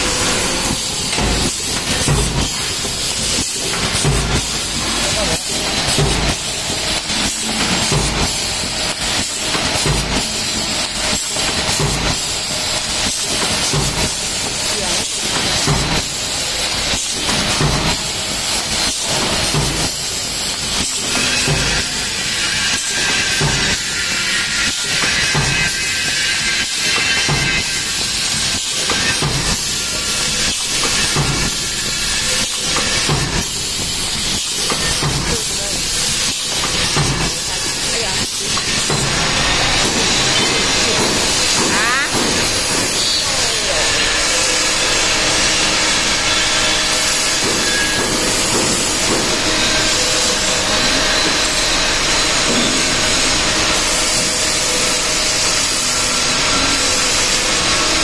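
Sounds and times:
machine mechanical clatter: 0.0 - 58.0.

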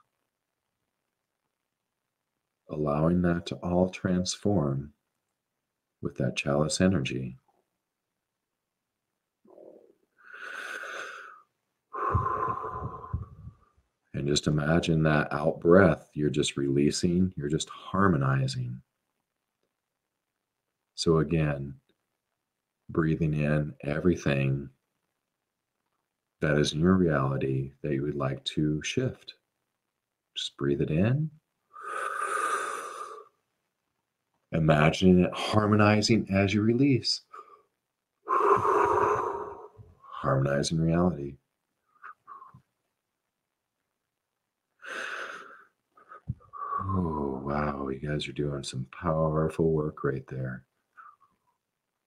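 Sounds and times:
man breathing in deeply: 10.2 - 13.5, 38.3 - 39.8
man breathing out: 12.0 - 13.5, 38.3 - 39.8.

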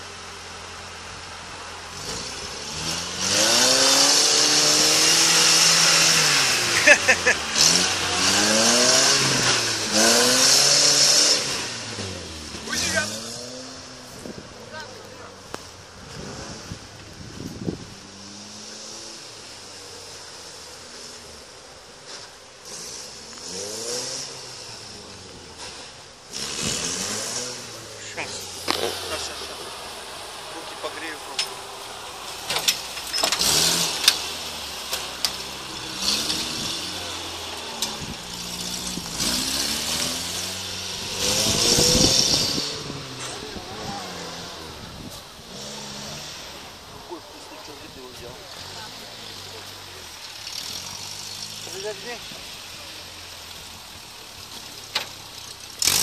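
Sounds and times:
off-road vehicle engine revving: 0.0 - 56.0.

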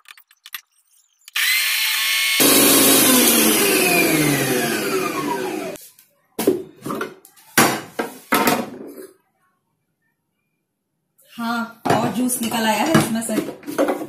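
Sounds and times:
juicer motor spinning: 1.3 - 5.8.

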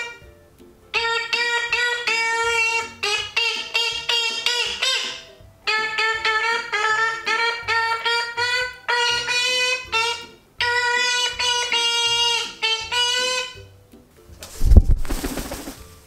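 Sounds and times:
jaunty wordless tune: 0.0 - 16.0
parrot wings flapping: 14.4 - 16.0.

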